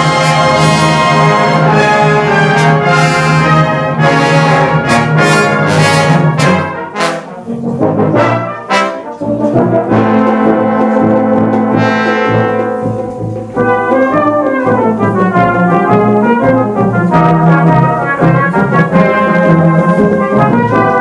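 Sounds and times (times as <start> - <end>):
brass band playing chords: 0.0 - 21.0.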